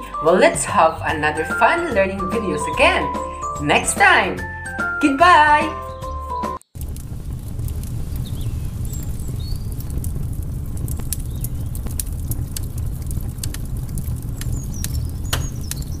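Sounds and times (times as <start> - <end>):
fire crackling: 6.6 - 16.0.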